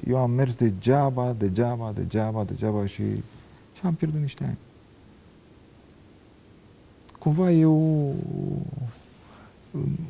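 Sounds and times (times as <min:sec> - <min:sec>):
man murmuring hesitantly: 0:07.4 - 0:09.0, 0:09.7 - 0:10.0.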